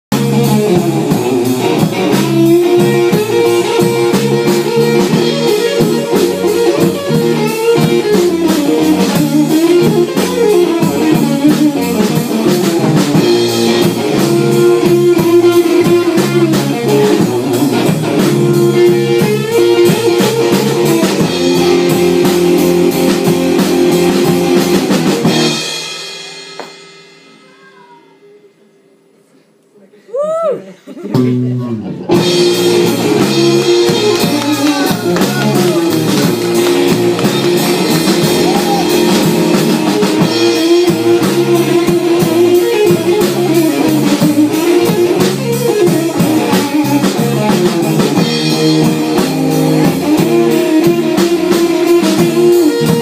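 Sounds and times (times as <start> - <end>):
live blues rock band: 0.1 - 27.6, 31.0 - 53.0.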